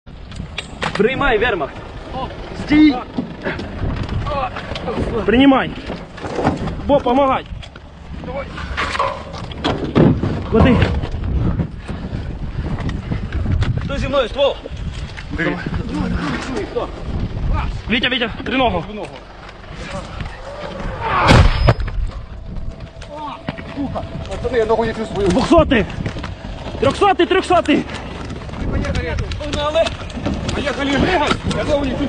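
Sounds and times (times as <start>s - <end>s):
steady low rumble: 0.1s - 32.0s
people shouting: 20.0s - 21.6s
sharp crack: 20.9s - 25.4s
shell explosion: 21.2s - 22.0s
gear knocking and clattering: 21.8s - 32.0s.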